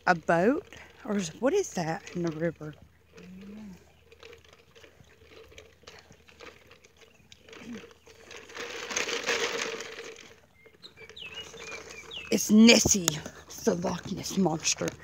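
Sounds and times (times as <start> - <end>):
high bird chirps: 10.6 - 12.5.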